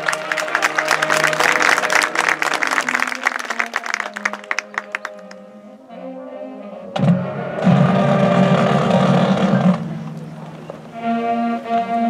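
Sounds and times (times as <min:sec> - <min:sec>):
marching band chord: 0:00.0 - 0:12.0.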